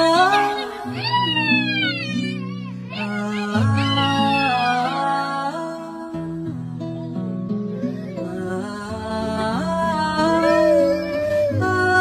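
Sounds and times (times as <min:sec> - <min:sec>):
young child crying: 0:00.0 - 0:05.2, 0:07.7 - 0:08.7, 0:10.2 - 0:12.0.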